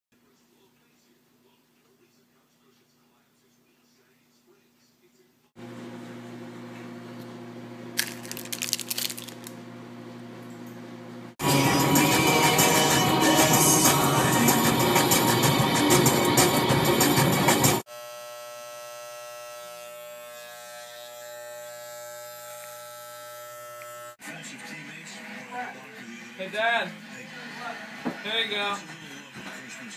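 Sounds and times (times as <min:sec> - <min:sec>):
electric hair clippers buzzing: 0:16.9 - 0:24.2.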